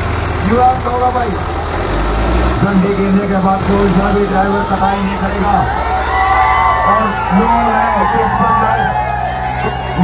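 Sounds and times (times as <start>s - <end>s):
tractor diesel engines throbbing: 0.0s - 10.0s
man talking loudly: 0.4s - 1.4s, 2.6s - 5.8s, 6.8s - 9.0s.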